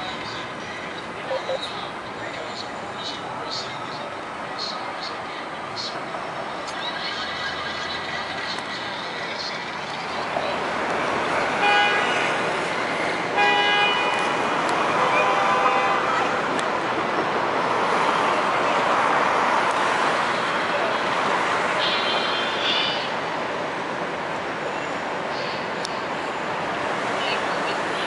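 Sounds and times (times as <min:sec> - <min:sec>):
traffic noise: 0:00.0 - 0:28.0
car horns honking: 0:11.4 - 0:12.6, 0:13.3 - 0:16.5.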